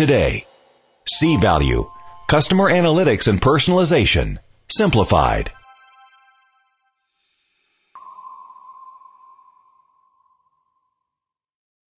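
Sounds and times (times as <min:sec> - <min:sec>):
electronic ping tone: 0:01.4 - 0:03.0, 0:05.4 - 0:06.9, 0:08.0 - 0:11.0.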